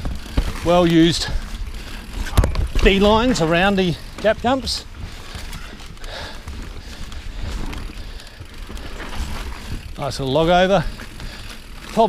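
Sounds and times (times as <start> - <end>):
bike clicks and rattles: 0.0 - 12.0
bike tyres rumbling on dirt trail: 0.0 - 12.0.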